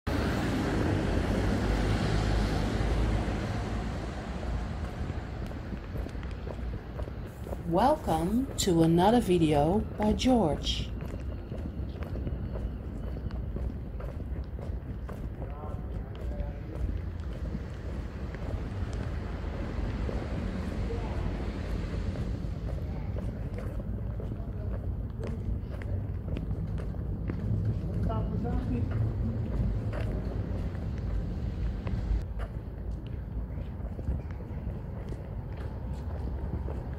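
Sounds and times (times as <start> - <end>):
faint street background hiss: 0.1 - 36.9
wind buffeting microphone: 3.0 - 8.6, 10.9 - 36.9.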